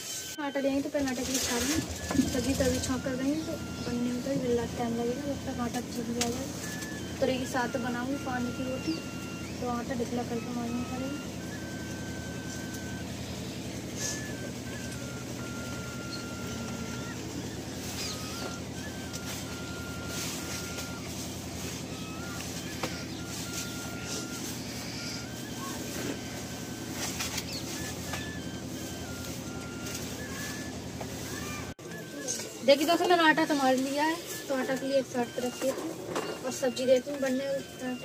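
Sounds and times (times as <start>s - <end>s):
low machine hum: 0.0s - 38.0s
thin high tone changing pitch: 0.0s - 38.0s.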